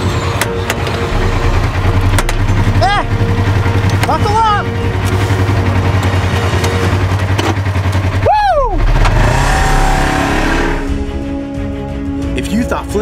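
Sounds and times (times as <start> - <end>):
engine idling and revving: 0.0 - 12.3
person whooping shout: 8.2 - 8.8.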